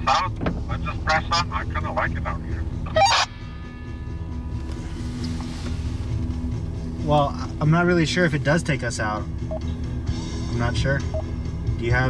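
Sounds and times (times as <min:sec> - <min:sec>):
car engine droning: 0:00.0 - 0:12.0.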